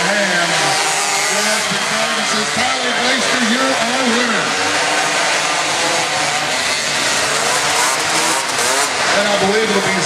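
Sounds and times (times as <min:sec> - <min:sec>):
quad engines buzzing and revving: 0:00.0 - 0:10.0.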